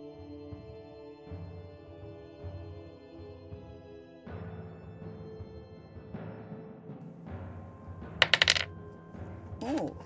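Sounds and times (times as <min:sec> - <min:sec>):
small glass vials clinking: 0:08.2 - 0:08.7.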